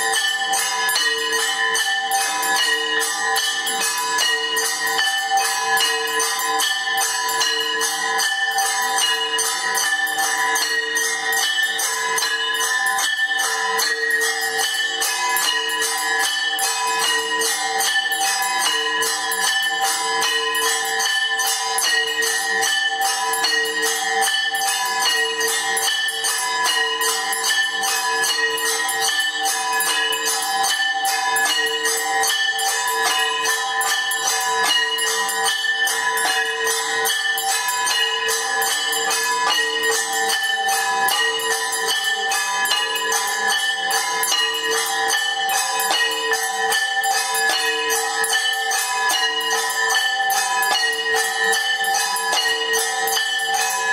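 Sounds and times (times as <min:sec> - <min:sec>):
bells ringing rapidly: 0:00.0 - 0:53.9.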